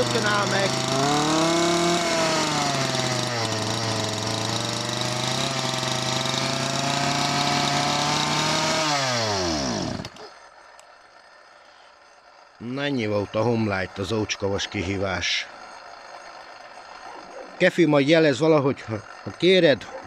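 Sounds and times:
chainsaw idling: 0:00.0 - 0:20.0.

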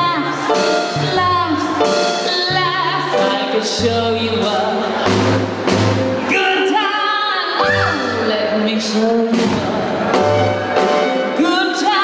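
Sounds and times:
woman singing: 0:00.0 - 0:05.4, 0:06.4 - 0:10.1, 0:11.3 - 0:12.0
cabaret band playing: 0:00.0 - 0:12.0.

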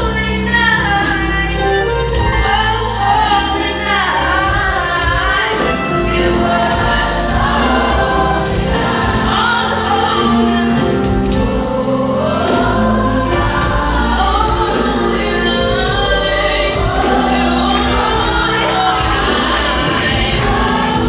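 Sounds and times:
gospel choir singing: 0:00.0 - 0:21.0.

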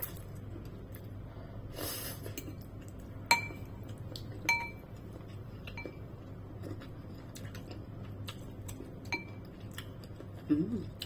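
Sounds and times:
metal spoon clinking against bowl: 0:03.3 - 0:03.7, 0:04.5 - 0:04.8, 0:09.1 - 0:09.4.

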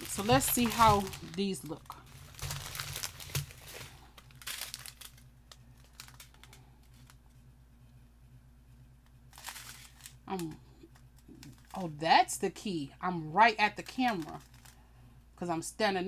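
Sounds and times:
plastic bags crinkling: 0:00.0 - 0:07.2, 0:09.3 - 0:12.0, 0:13.6 - 0:14.8.

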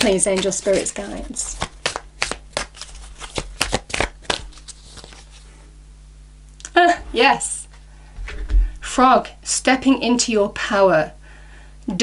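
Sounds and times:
cards being shuffled: 0:00.0 - 0:05.5.

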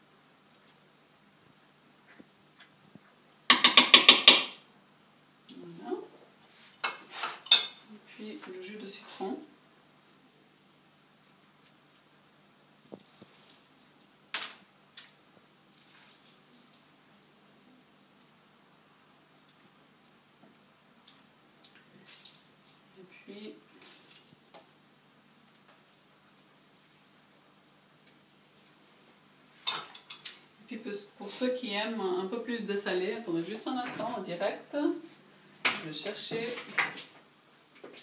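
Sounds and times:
juice dripping: 0:20.9 - 0:26.1
person speaking: 0:30.6 - 0:35.2, 0:35.8 - 0:36.8.

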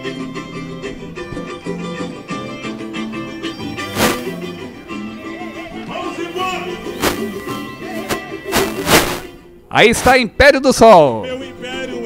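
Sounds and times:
loud sharp hit: 0:03.9 - 0:04.4, 0:08.1 - 0:09.3.

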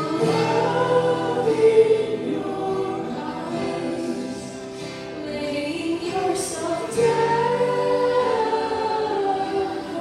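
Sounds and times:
acoustic guitar: 0:00.0 - 0:10.0
keyboard: 0:00.0 - 0:10.0
singers holding long notes: 0:00.0 - 0:10.0.

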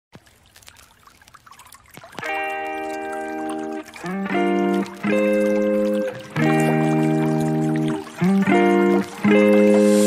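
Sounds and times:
stream babbling: 0:00.1 - 0:10.0.

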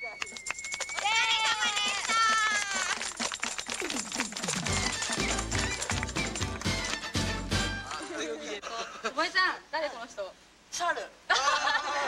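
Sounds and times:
hands clapping rapidly: 0:00.2 - 0:08.1.

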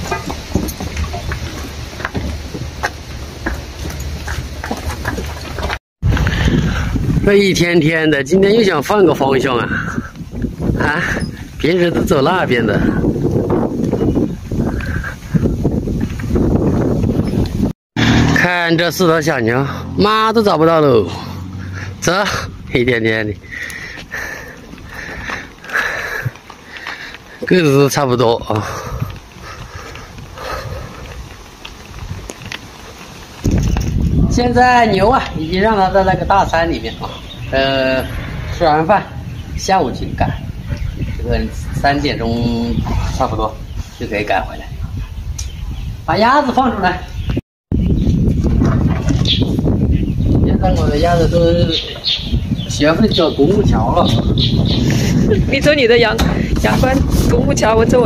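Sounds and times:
cattle hooves clopping on hard ground: 0:00.0 - 0:05.8, 0:23.6 - 0:37.5
hoof clicks on concrete: 0:00.0 - 0:05.8, 0:23.6 - 0:27.6, 0:28.4 - 0:34.2
low rumbling noise: 0:33.3 - 0:41.8.

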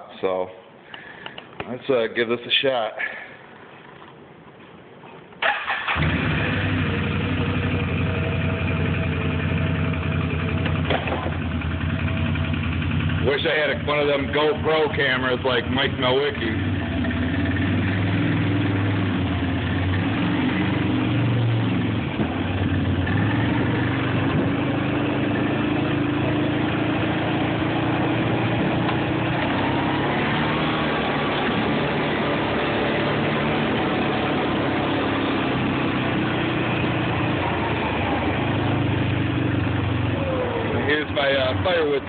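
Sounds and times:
quad bike engine running: 0:06.0 - 0:42.0.

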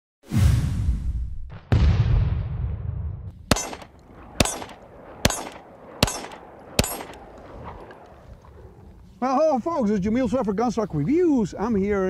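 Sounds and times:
pistol shots with echo: 0:03.5 - 0:08.1.

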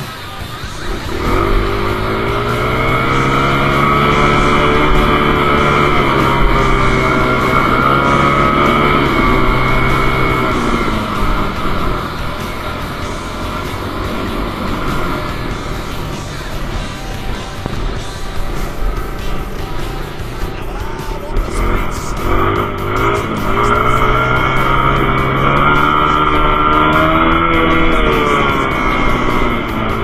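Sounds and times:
background music: 0:00.0 - 0:30.0
dirt bike engine: 0:00.0 - 0:30.0.

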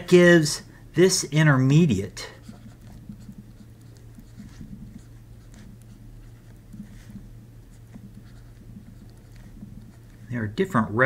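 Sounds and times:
low electrical hum: 0:00.0 - 0:11.0
stylus scratching on tablet: 0:02.0 - 0:10.6.

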